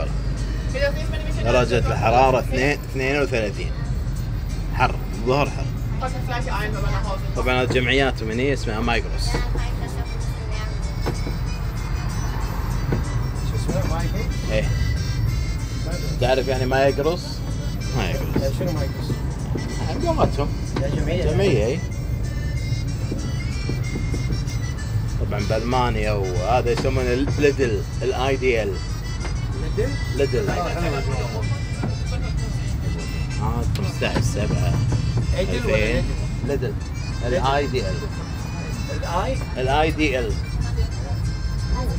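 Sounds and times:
music playing: 0.0 - 41.9
road train motor rumble: 0.0 - 41.9
voices: 0.0 - 41.9.

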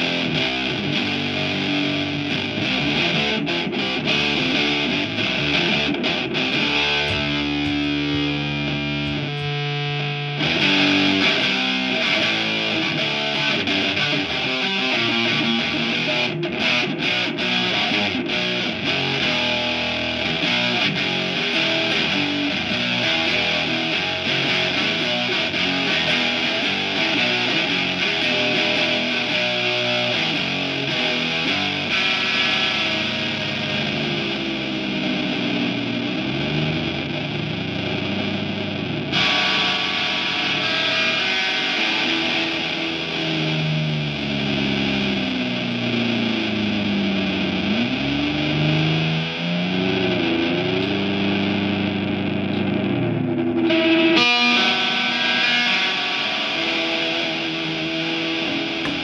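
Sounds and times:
distorted electric guitar with feedback: 0.0 - 59.0.

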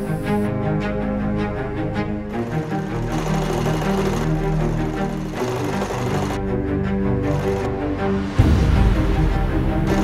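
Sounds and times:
background music: 0.0 - 10.0
sewing machine running: 2.3 - 6.5, 7.2 - 7.8.

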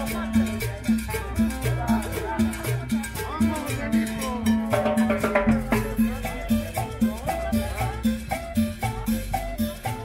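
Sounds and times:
cowbell: 0.0 - 10.0
drums: 0.0 - 10.0
latin dance band playing: 0.0 - 10.0
upright bass line: 0.0 - 10.0.

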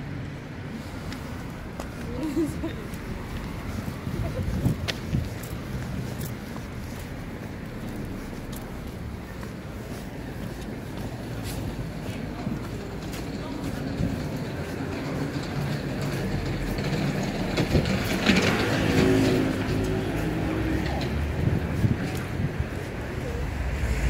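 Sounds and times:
road traffic rumble: 0.0 - 24.0
people's voices: 0.8 - 24.0.

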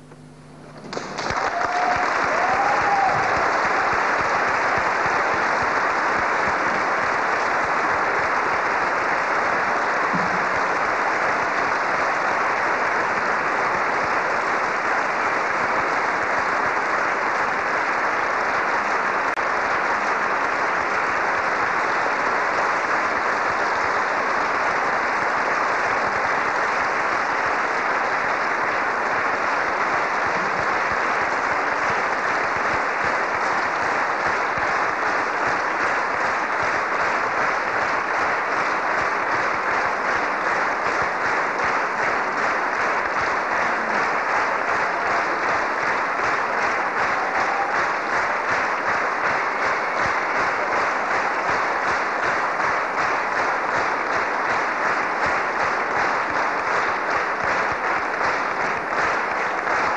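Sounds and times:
audience applauding: 0.0 - 59.9.

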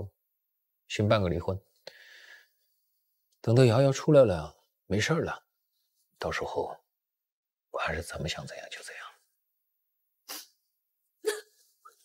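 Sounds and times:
woman sobbing: 11.2 - 11.7.

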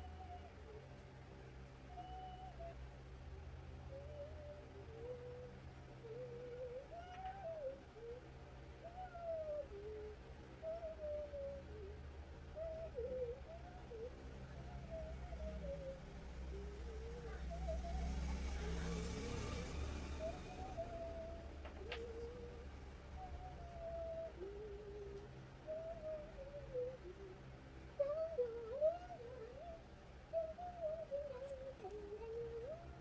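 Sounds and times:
bird cooing: 0.0 - 0.9, 1.9 - 2.8, 3.9 - 33.0
steady low hum: 0.0 - 33.0
person humming a tune: 1.9 - 2.8, 3.9 - 33.0.

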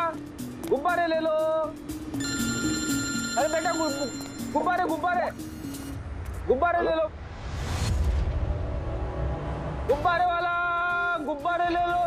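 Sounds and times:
background music: 0.0 - 12.0
mobile phone ringing: 2.2 - 6.0.

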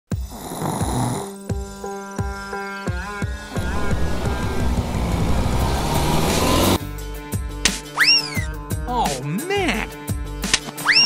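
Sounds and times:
cartoon breathy snore: 0.1 - 1.4
background music with drum beat: 0.1 - 5.1, 6.7 - 11.0.

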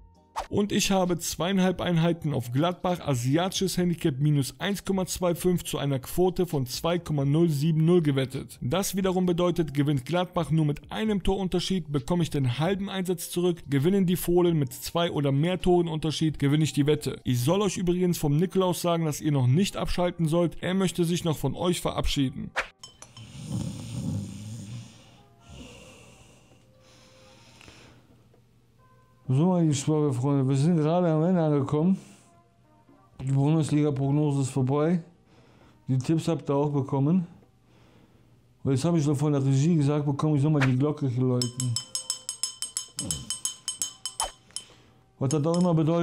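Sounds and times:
faint background music: 0.0 - 46.0
man snoring: 23.2 - 26.5
brass handbell ringing: 41.4 - 45.8.

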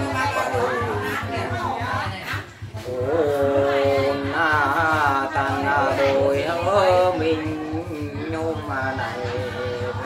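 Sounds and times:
steady low pulse: 0.0 - 10.0.

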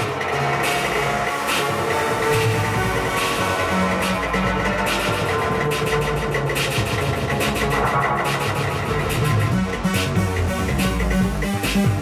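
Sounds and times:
electro music from vinyl: 0.0 - 12.0.

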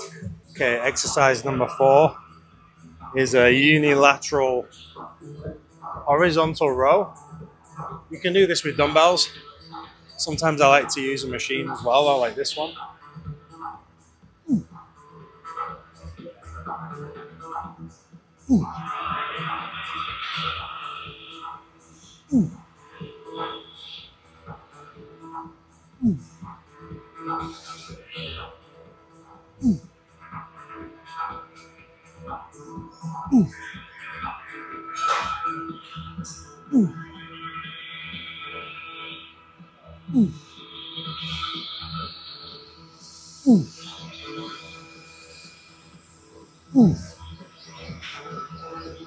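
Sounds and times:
background music with beat: 0.0 - 49.0.

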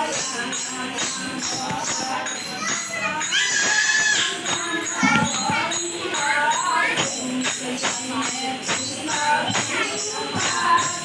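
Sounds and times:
jingling percussion: 0.0 - 11.0
women singing devotional song: 0.0 - 11.0
hand drum: 1.0 - 2.9, 3.6 - 11.0.

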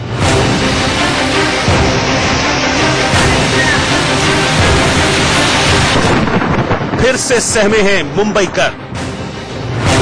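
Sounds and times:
background music: 0.0 - 10.0
heavy rain: 0.0 - 10.0
thunder rumble: 0.1 - 10.0.

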